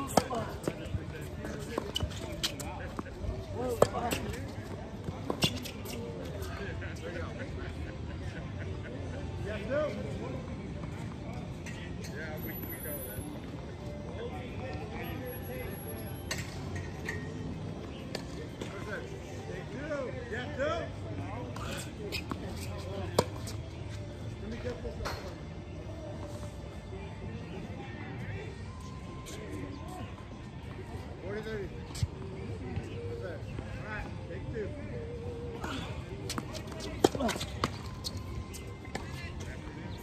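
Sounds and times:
faint music: 0.0 - 40.0
indistinct background voices: 20.9 - 31.2.

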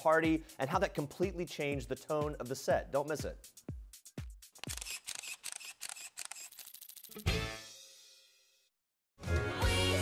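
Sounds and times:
rapid camera shutter clicks: 4.6 - 7.1.

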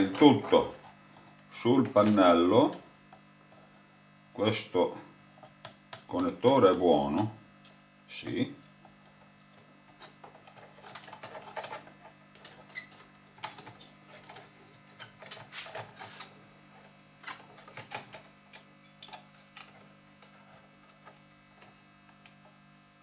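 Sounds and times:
faint steady hum: 0.0 - 23.0
plastic parts clicking and rattling: 10.0 - 16.3.

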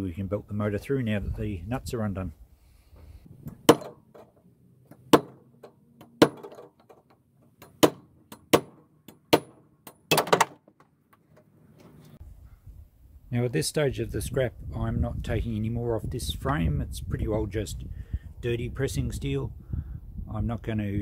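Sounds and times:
hammer striking steel: 5.1 - 5.4.

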